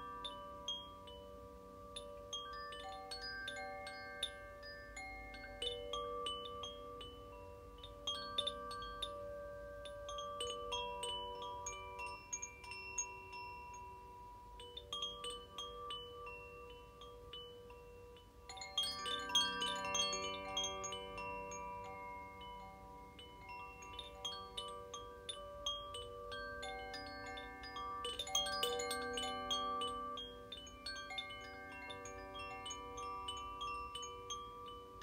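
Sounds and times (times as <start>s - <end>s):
wind chimes ringing: 0.0s - 35.0s.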